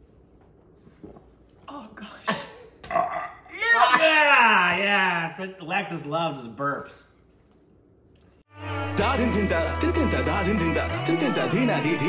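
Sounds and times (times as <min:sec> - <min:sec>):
person burping: 0:02.3 - 0:03.7.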